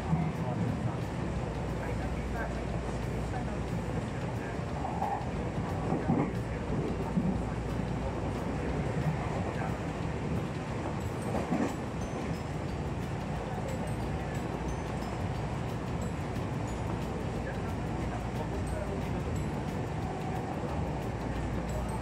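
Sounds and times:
train wheels rumbling on rail: 0.0s - 22.0s.

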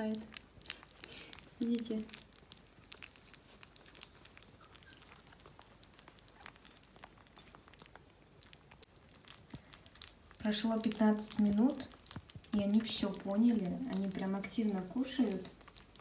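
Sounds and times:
puppies lapping and smacking: 0.0s - 16.0s.

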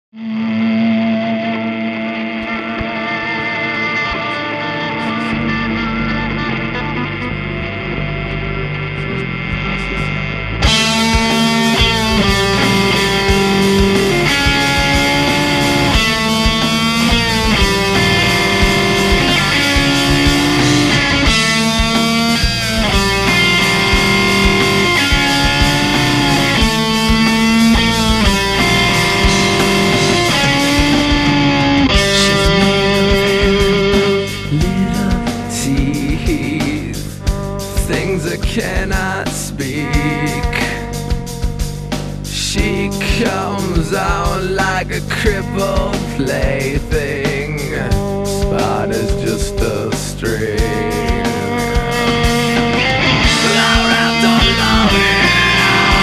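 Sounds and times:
electric guitar playing: 0.1s - 56.0s
rock backing track: 0.2s - 56.0s.

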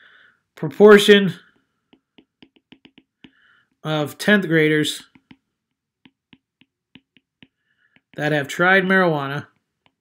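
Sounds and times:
stylus tapping on glass screen: 1.9s - 3.4s, 5.0s - 8.3s.

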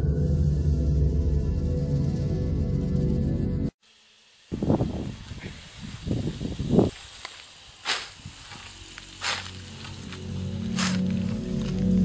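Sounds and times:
hoe swishing through plants: 4.8s - 12.0s.

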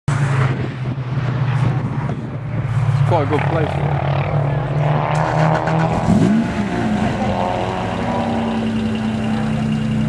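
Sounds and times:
wind noise on microphone: 0.1s - 3.0s
car engine droning: 0.1s - 10.0s.

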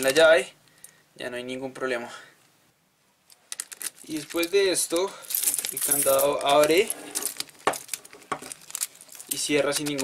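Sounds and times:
keys jingling on key ring: 4.0s - 8.0s.

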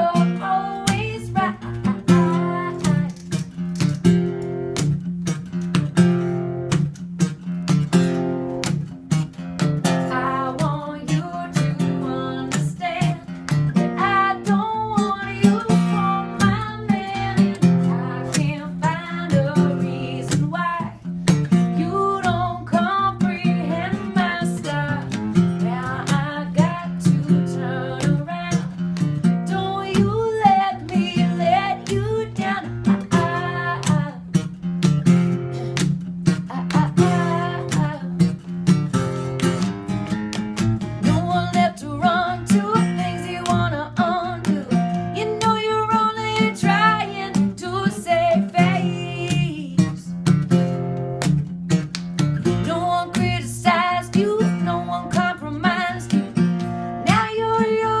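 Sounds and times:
woman singing: 0.0s - 3.5s, 9.8s - 34.5s, 36.3s - 38.6s, 41.0s - 50.2s, 52.4s - 58.0s
strummed guitar: 0.0s - 58.0s.

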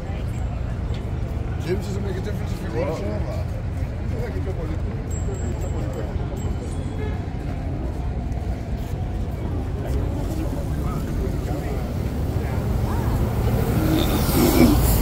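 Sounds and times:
crowd murmur: 0.0s - 15.0s
road traffic: 0.0s - 15.0s.

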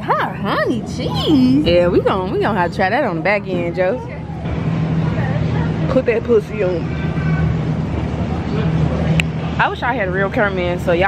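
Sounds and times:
faint voices: 0.0s - 11.0s
steady low hum and hiss: 0.0s - 11.0s.

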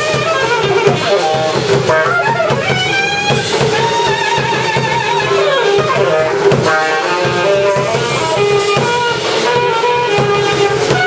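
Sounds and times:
alto saxophone melody: 0.0s - 11.0s
drum kit steady pulse: 0.0s - 11.0s.

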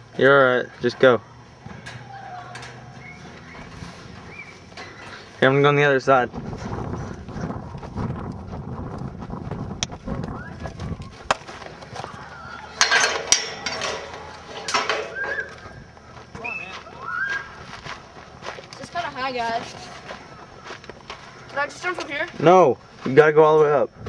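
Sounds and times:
faint voices: 0.6s - 4.2s
fence rattling and clanking: 0.8s - 6.8s, 10.7s - 15.9s.

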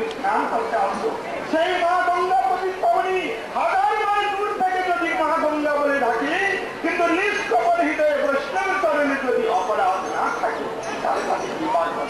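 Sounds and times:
busy background noise: 0.0s - 12.0s
people's voices: 0.0s - 12.0s.

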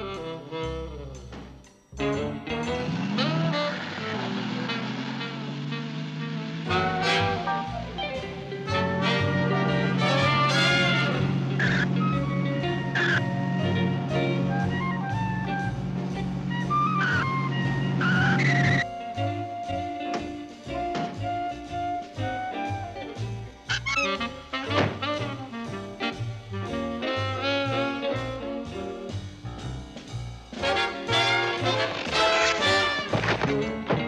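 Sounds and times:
jazz music: 0.0s - 34.0s
cartoon car engine effect: 2.0s - 18.9s, 23.7s - 25.6s
cartoon tyre screech: 2.8s - 7.6s, 10.0s - 12.2s, 12.9s - 13.4s, 18.0s - 18.8s, 23.7s - 24.2s.

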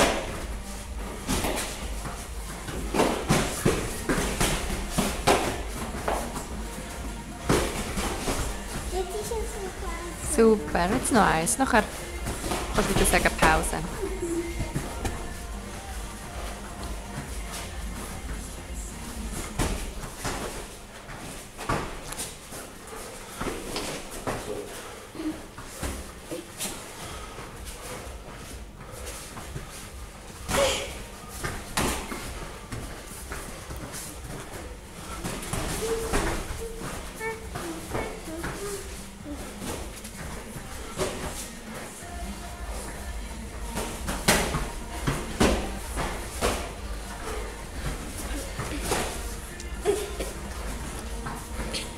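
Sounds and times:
punches and kicks landing: 1.2s - 6.4s, 43.6s - 47.0s.

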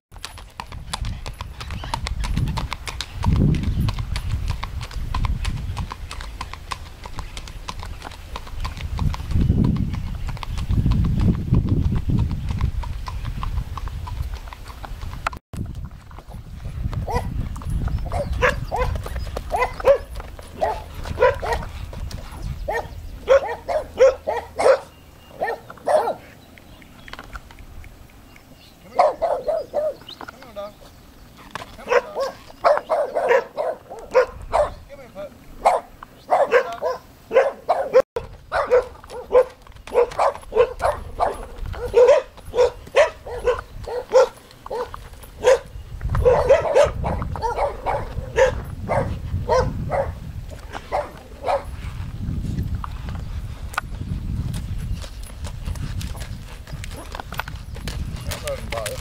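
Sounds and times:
small dog barking: 17.1s - 17.3s, 18.1s - 21.7s, 22.7s - 26.3s, 28.9s - 30.0s, 31.8s - 34.8s, 35.6s - 50.2s, 50.9s - 51.7s.

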